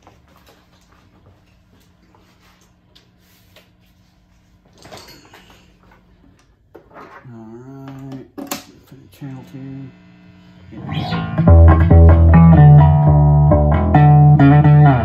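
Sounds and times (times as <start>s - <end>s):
amplifier humming: 7.2s - 15.0s
short low pitched sound: 10.7s - 15.0s.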